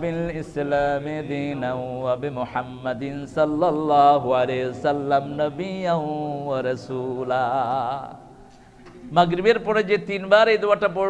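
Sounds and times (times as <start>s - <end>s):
man chanting melodically: 0.0s - 8.4s, 9.1s - 11.0s.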